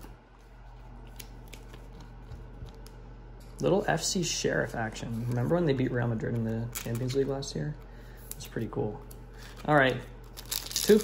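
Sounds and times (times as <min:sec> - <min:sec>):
trading cards and packaging rustling: 0:04.8 - 0:11.0.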